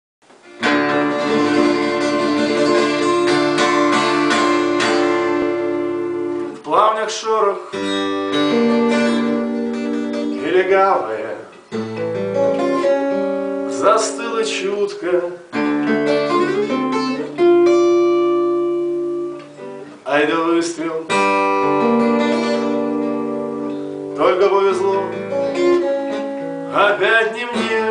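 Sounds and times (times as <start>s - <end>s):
acoustic guitar strumming chords: 0.3s - 27.9s.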